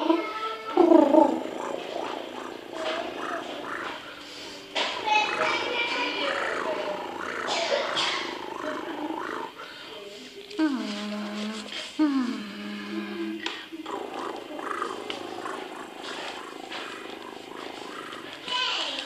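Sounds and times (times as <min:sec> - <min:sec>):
cat purring: 0:00.0 - 0:19.0
person speaking softly: 0:05.0 - 0:19.0.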